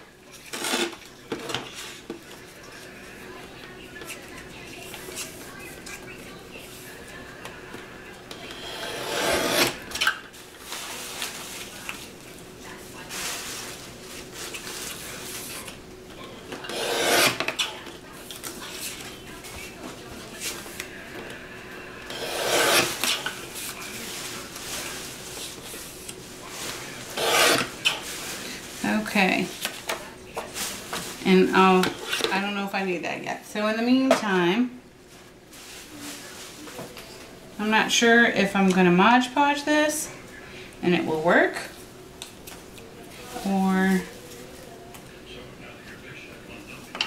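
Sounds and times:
paper trimmer blade cutting: 8.7 - 9.8, 16.7 - 17.5, 22.1 - 23.1, 27.2 - 27.7.

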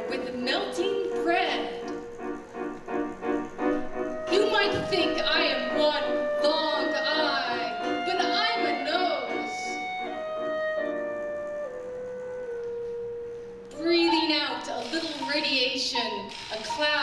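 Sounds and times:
chamber ensemble music: 0.0 - 17.0.

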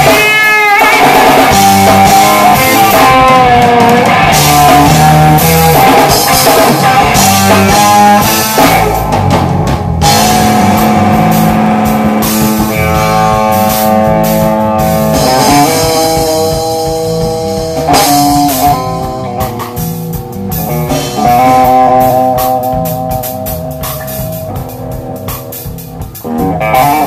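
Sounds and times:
bass guitar: 0.0 - 27.0
drum kit: 0.0 - 27.0
electric guitar: 0.0 - 27.0.

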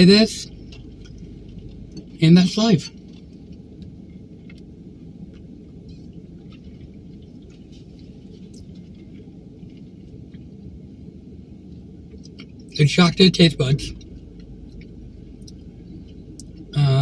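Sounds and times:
low car cabin hum: 0.0 - 17.0.

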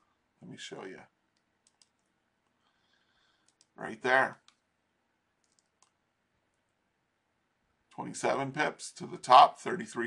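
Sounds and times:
computer mouse clicks: 1.3 - 2.1, 3.4 - 3.8, 4.4 - 4.6, 5.4 - 6.0.

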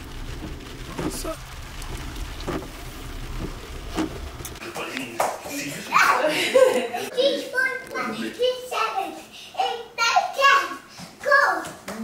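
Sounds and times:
car road rumble: 0.0 - 5.1
young child's voice: 5.9 - 6.4, 7.0 - 11.9.

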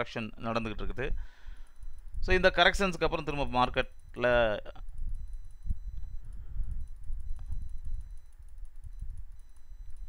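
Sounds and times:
low uneven background rumble: 0.0 - 10.0.

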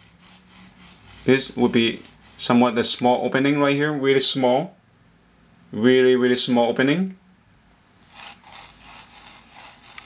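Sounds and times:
pencil sketching on paper: 0.0 - 4.0, 8.0 - 10.0.

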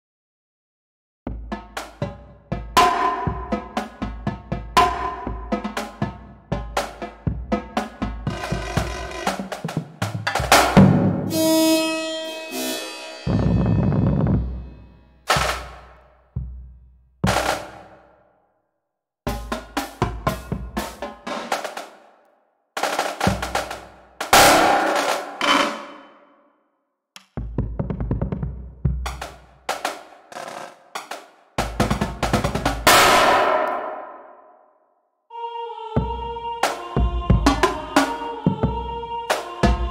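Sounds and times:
bass drum roll: 1.3 - 11.4, 13.2 - 17.8, 27.4 - 29.3, 31.6 - 33.9
bass drums: 1.3 - 11.4, 13.3 - 17.9, 19.3 - 21.2, 23.2 - 24.9, 27.3 - 29.6, 31.6 - 33.6, 37.0 - 38.9, 39.6 - 39.9
tenor drums: 1.3 - 18.1, 19.3 - 22.1, 22.8 - 26.1, 27.2 - 34.2, 36.0 - 39.9
snare drums: 1.5 - 11.4, 15.3 - 16.1, 17.2 - 18.1, 19.3 - 22.2, 22.8 - 26.1, 27.4 - 34.2, 36.6 - 38.6, 39.3 - 39.9
cymbal crash: 10.6 - 15.8, 32.9 - 34.2.

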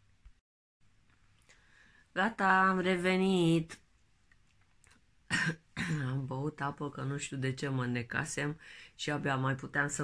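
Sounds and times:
woman coughing: 5.3 - 6.2.

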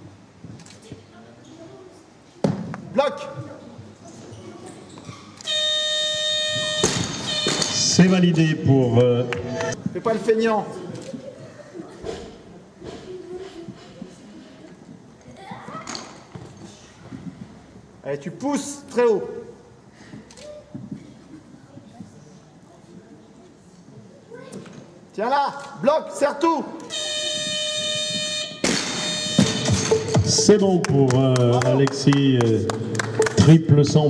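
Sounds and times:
electronic buzzer: 5.4 - 8.0, 26.9 - 30.5.

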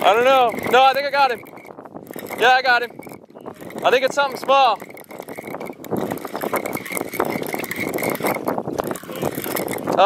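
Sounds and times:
fishing reel clicking: 0.0 - 10.0.

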